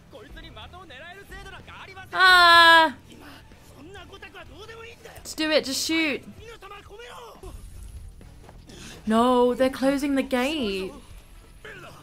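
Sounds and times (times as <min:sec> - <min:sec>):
person speaking: 0:02.2 - 0:03.0.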